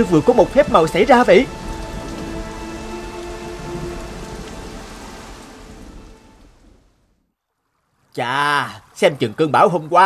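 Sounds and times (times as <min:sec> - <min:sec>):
steady rain downpour: 0:00.0 - 0:10.0.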